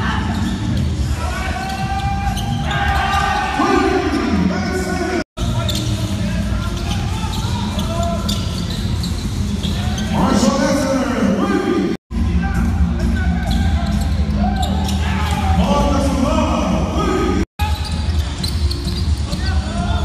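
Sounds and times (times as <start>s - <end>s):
voices calling out: 0.0s - 20.0s.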